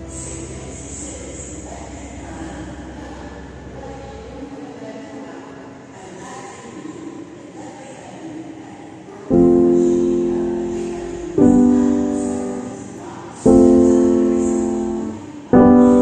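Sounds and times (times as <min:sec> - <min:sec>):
train low rumble: 0:00.0 - 0:04.4, 0:09.3 - 0:16.0
steady noisy haze: 0:00.0 - 0:16.0
faint tones: 0:09.3 - 0:16.0.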